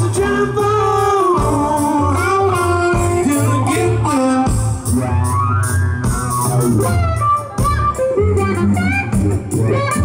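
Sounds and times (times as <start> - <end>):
man singing: 0.0 - 5.4
blues rock band playing: 0.0 - 10.0.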